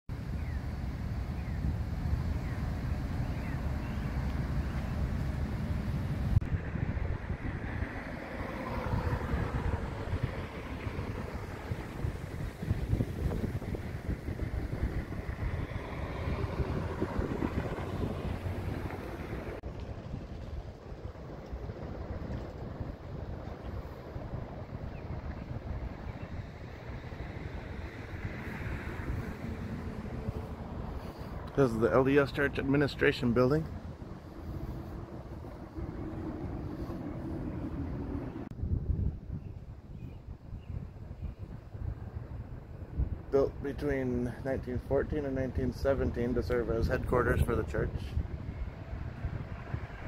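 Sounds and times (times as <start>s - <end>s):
traffic passing: 0.1s - 50.0s
wind rumbling on microphone: 0.1s - 50.0s.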